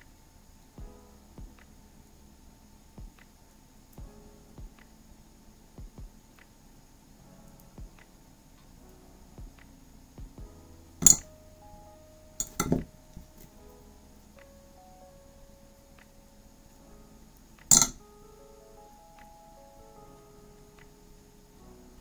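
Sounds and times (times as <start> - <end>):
soft background music: 0.0 - 22.0
metal pliers clinking: 12.4 - 12.8, 17.7 - 18.0.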